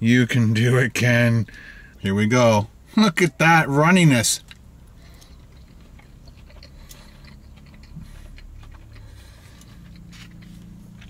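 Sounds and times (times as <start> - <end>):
steady low hum: 0.0 - 11.0
person chewing food: 4.4 - 11.0.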